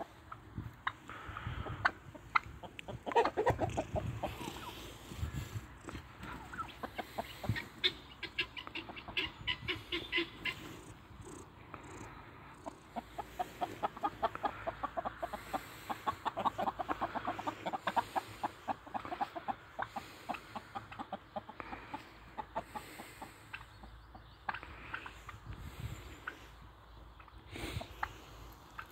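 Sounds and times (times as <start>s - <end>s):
hens clucking: 0.0s - 28.9s.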